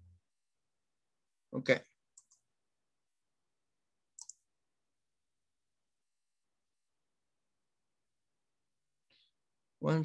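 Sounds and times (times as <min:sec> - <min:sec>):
faint clicks: 0:04.2 - 0:04.5.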